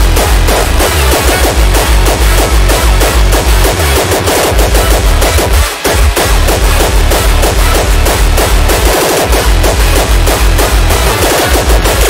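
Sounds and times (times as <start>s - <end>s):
distorted percussive hits: 0.0s - 12.0s
heavy bass: 0.0s - 12.0s.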